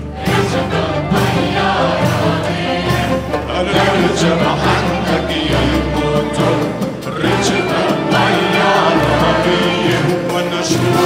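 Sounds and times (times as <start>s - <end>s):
mixed choir singing: 0.0s - 11.0s
orchestra playing: 0.0s - 11.0s.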